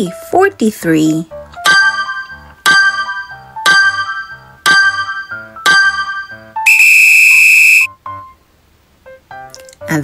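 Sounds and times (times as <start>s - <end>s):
loud steady buzzer: 6.7s - 7.9s.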